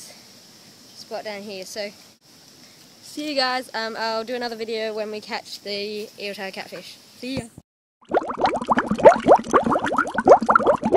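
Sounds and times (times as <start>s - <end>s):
bubbling water bloops: 8.0s - 10.9s.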